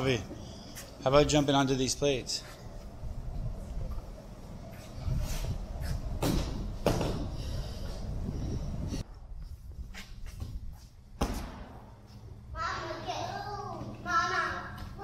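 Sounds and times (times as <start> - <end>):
gym fan hum: 0.0 - 15.0
child landing on foam boxes: 6.2 - 7.3.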